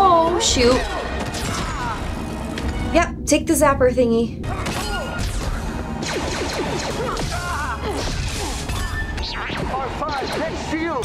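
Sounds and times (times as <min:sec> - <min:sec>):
soundtrack music: 0:00.0 - 0:11.0.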